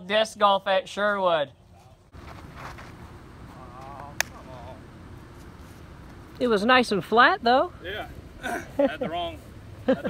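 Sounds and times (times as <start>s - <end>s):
distant talking: 3.0s - 10.0s.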